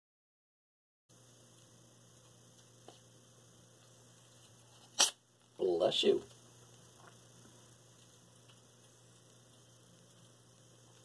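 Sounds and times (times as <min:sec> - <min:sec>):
faint background hiss: 0:01.1 - 0:11.0
low electrical hum: 0:01.1 - 0:11.0.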